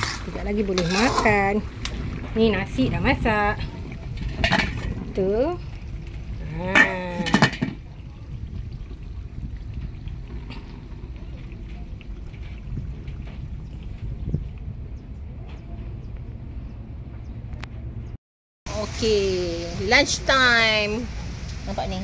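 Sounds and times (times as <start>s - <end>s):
wind: 0.0s - 22.0s
rain: 18.7s - 22.0s.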